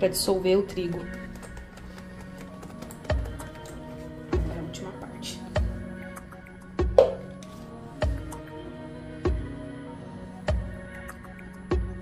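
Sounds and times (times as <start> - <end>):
slow background music: 0.0 - 12.0.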